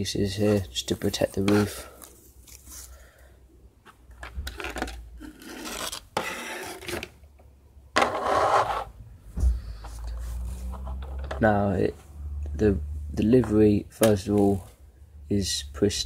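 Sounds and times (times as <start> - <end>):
plastic tray and foam scraping: 3.9 - 7.2, 8.0 - 11.5.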